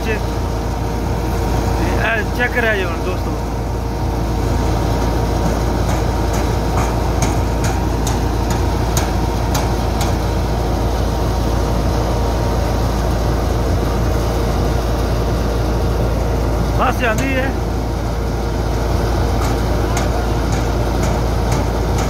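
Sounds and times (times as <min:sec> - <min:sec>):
thresher droning: 0:00.0 - 0:22.0.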